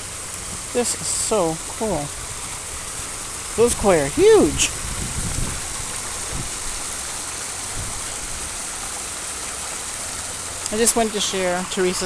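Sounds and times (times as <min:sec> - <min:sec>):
waterfall splashing into pond: 0:00.0 - 0:12.0.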